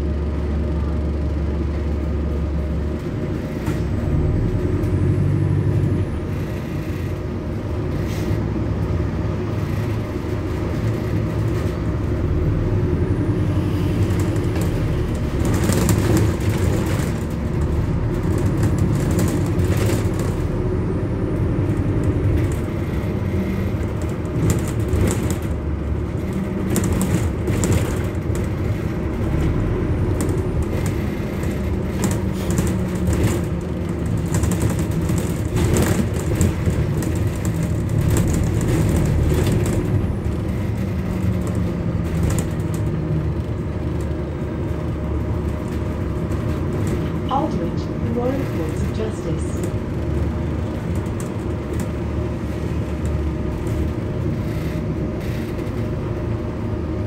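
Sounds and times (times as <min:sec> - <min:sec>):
bus engine and road rumble: 0:00.0 - 0:57.0.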